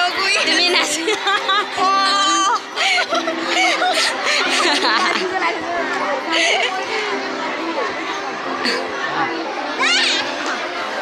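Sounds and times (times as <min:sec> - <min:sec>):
crowd noise: 0:00.0 - 0:11.0
voices chattering: 0:00.0 - 0:11.0.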